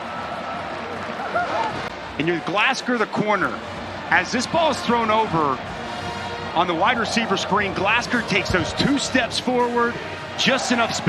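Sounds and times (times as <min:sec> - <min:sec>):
stadium crowd cheering: 0:00.0 - 0:11.0
man's voice: 0:02.2 - 0:05.6, 0:06.5 - 0:11.0.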